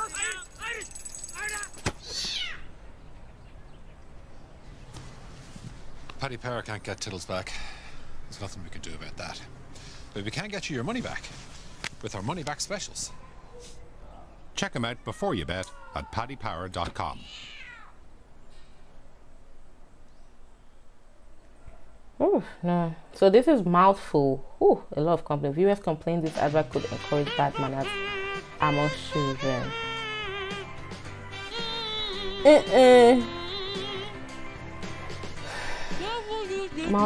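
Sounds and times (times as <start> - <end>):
cat yowling: 14.8 - 16.4, 17.3 - 18.0, 27.8 - 32.6, 33.2 - 34.2
cat meowing: 17.2 - 18.0, 27.9 - 30.7.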